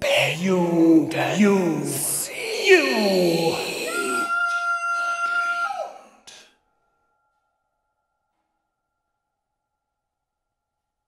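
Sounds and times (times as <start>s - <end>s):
processed male voice singing: 0.0s - 4.3s.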